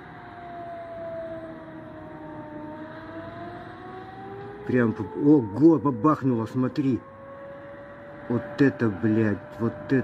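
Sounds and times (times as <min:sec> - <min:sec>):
air-raid siren wailing: 0:00.0 - 0:10.0
lower siren tone rising: 0:00.0 - 0:10.0.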